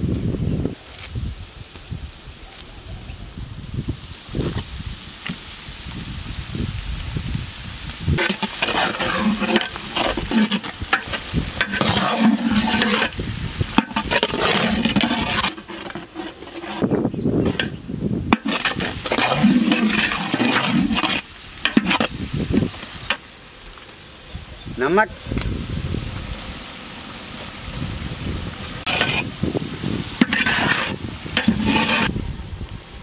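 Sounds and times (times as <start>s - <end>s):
vegetables sizzling in oil: 3.3s - 33.0s
metal ladle scraping pot: 8.2s - 23.2s, 28.8s - 32.1s.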